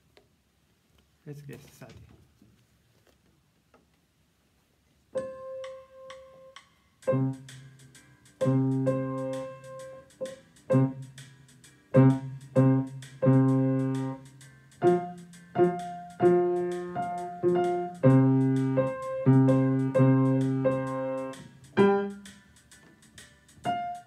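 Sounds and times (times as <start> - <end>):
grand piano playing blues: 5.2 - 7.5, 8.4 - 11.0, 11.9 - 14.2, 14.8 - 22.5, 23.6 - 24.0.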